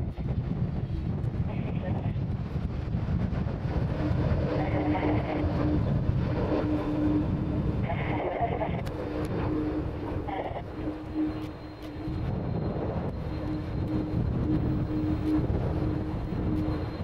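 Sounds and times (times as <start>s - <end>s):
jet engines rumbling: 0.0s - 17.0s.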